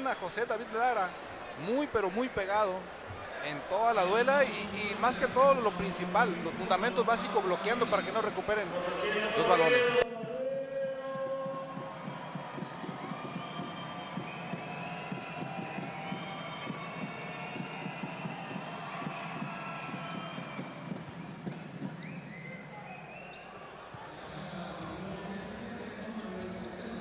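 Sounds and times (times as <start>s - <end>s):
murmur of arena crowd: 0.0s - 27.0s.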